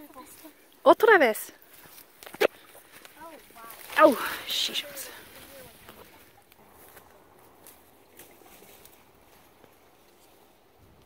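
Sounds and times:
rustling through brush: 0.0 - 11.0.

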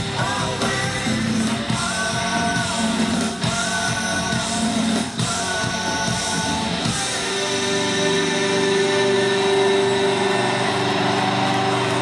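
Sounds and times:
rock band sustaining final chord: 0.0 - 12.0.

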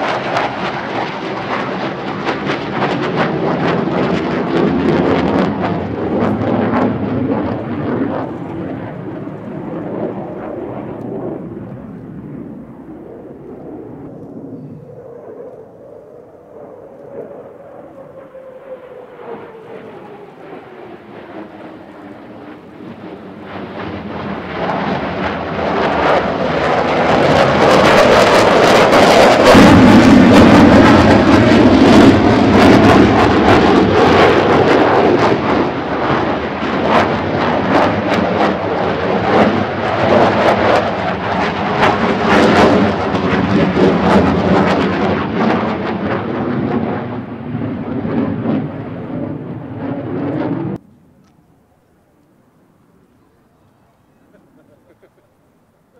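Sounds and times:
jet engine rumble: 0.0 - 55.9.

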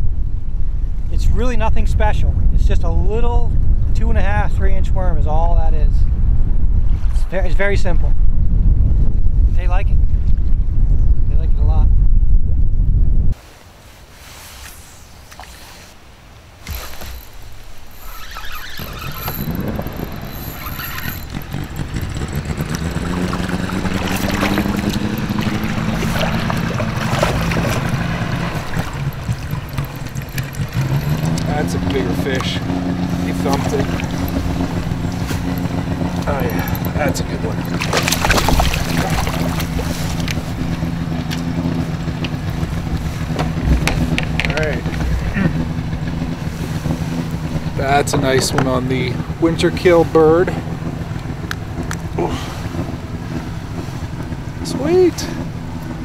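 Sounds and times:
boat engine running: 16.6 - 56.0
knocks and clicks: 18.7 - 32.0, 42.2 - 45.4.

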